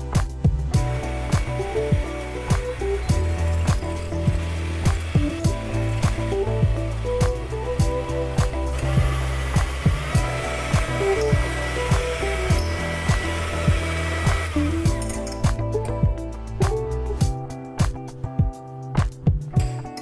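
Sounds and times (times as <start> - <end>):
background music with steady beat: 0.0 - 20.0
electric hand mixer running: 0.8 - 15.2.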